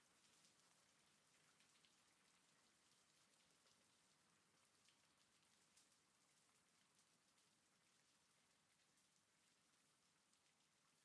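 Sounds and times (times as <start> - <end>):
faint rain hiss: 0.0 - 11.0
raindrop ticks: 0.2 - 9.2.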